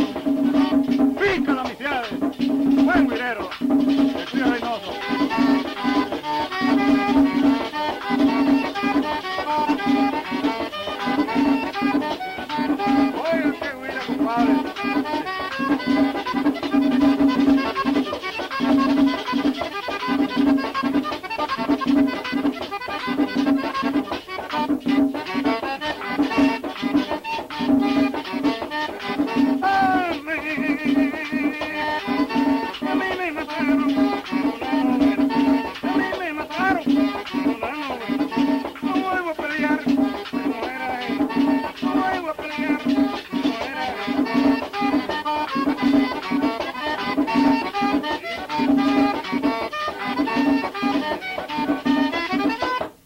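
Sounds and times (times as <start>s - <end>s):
button accordion: 0.0s - 53.0s
percussion dance beat: 0.0s - 53.0s.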